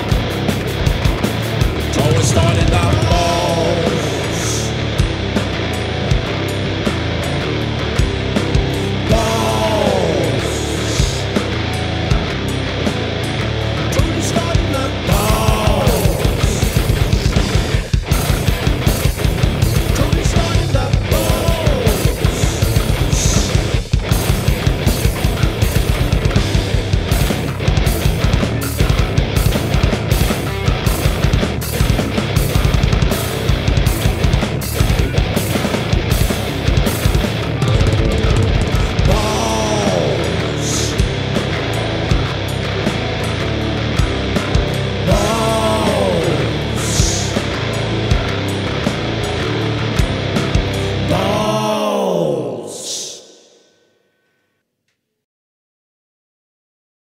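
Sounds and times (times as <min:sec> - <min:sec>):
fast electric bass guitar: 0:00.0 - 0:52.4
heavy metal drum kit: 0:00.0 - 0:53.3.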